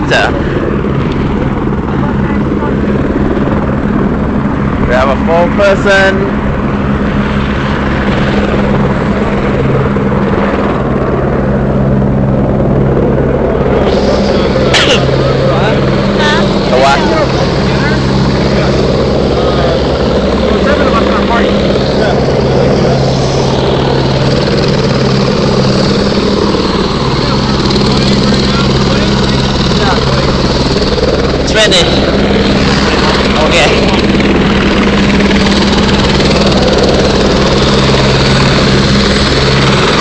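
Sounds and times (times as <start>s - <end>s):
helicopter engine drone: 0.0s - 40.0s.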